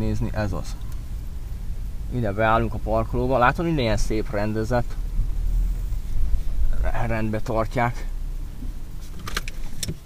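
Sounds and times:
car rumble from inside cabin: 0.0 - 10.0.

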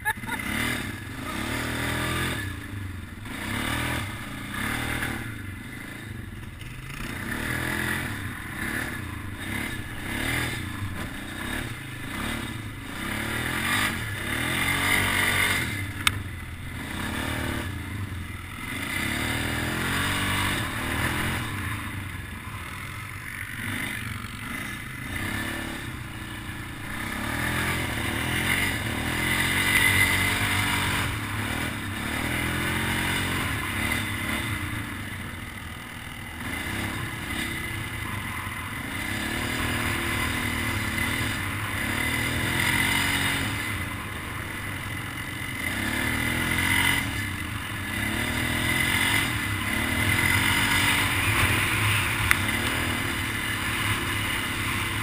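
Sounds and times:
atv engine revving: 0.0 - 55.0.

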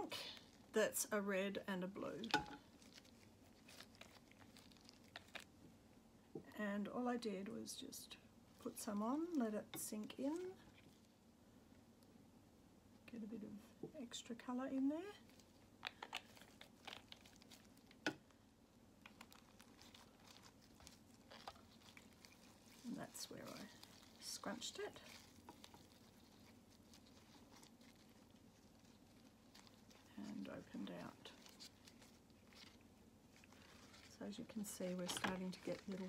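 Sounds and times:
soft paper rustles: 1.8 - 5.6, 8.5 - 12.2, 14.5 - 18.4, 19.0 - 36.0.

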